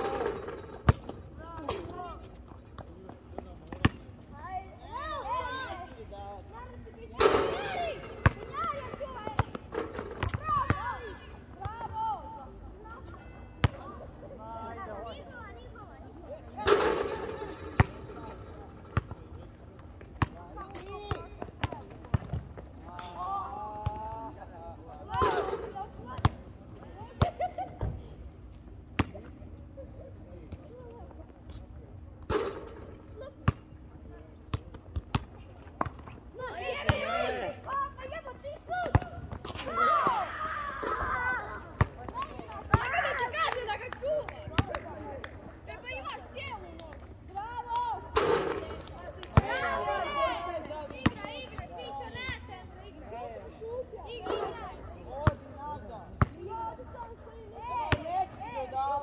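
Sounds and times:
basketball bouncing: 7.2s - 10.8s, 16.7s - 18.3s.

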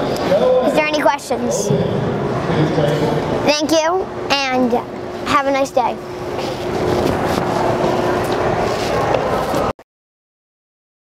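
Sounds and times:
room background noise: 0.0s - 9.8s.

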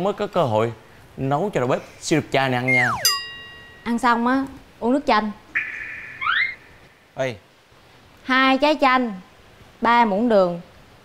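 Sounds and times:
rising whistle-like tone: 2.6s - 3.3s.

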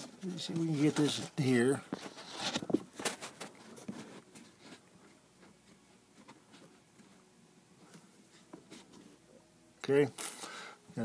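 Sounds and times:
man speaking: 0.2s - 1.8s.

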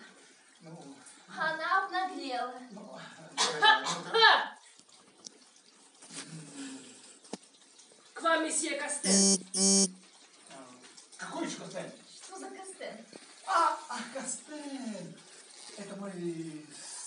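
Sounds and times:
doorbell buzzer: 9.1s - 10.0s.

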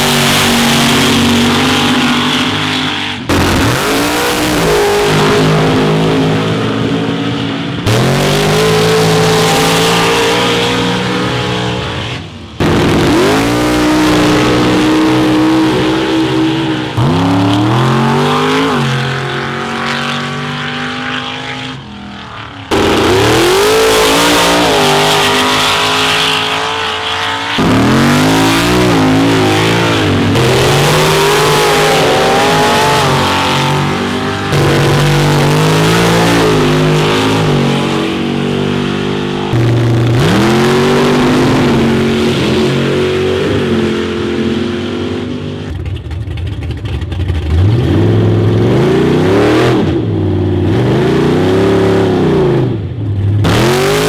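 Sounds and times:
truck engines revving hard: 0.0s - 45.8s, 47.2s - 54.0s.

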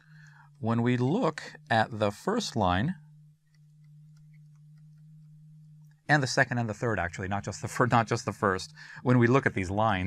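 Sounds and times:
faint electrical hum: 0.0s - 10.0s
faint light ticks: 3.4s - 6.0s.

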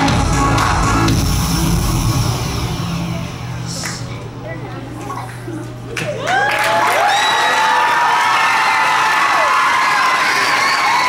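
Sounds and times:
held bass-heavy pop chord: 0.0s - 4.2s.

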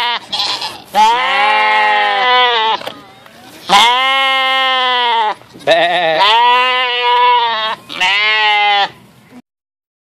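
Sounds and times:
sheep bleating: 0.0s - 2.9s, 3.7s - 9.0s.

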